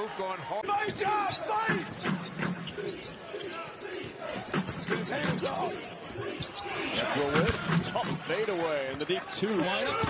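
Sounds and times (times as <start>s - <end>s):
voices in arena: 0.0s - 10.0s.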